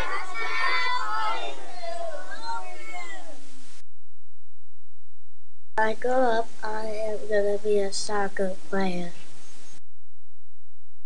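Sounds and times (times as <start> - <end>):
young children calling out and chattering: 0.0 - 3.4.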